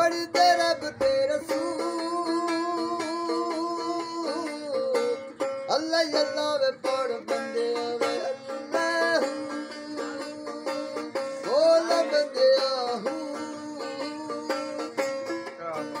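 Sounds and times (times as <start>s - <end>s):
bowed fiddle melody: 0.0s - 16.0s.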